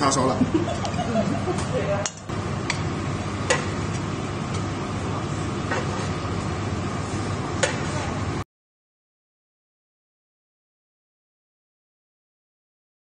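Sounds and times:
steady background noise: 0.0 - 8.4.

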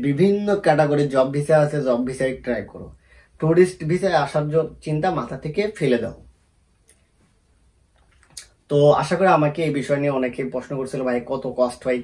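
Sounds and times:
man talking: 0.0 - 6.3, 8.4 - 12.0.

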